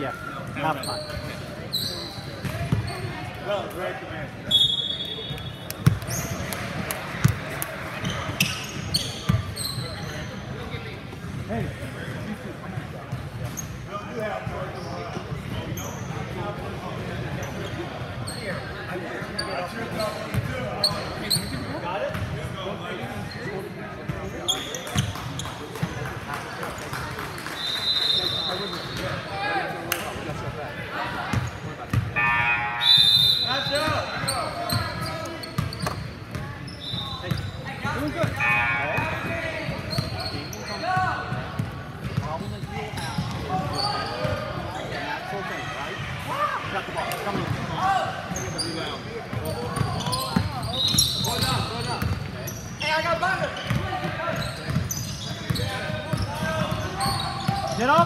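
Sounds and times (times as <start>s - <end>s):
sneakers squeaking: 0.0s - 3.4s, 4.4s - 12.2s, 13.1s - 16.4s, 17.0s - 25.9s, 26.7s - 29.5s, 30.4s - 45.2s, 47.0s - 58.0s
spectators talking and calling out: 26.8s - 58.0s.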